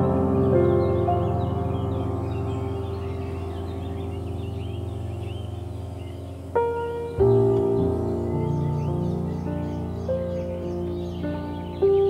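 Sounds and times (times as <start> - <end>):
birds chirping: 0.0 - 12.0
soft ambient music: 0.0 - 12.0.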